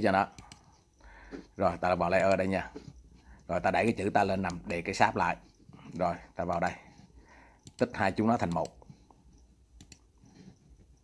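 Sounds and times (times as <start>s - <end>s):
faint mouse clicks: 9.8s - 10.1s.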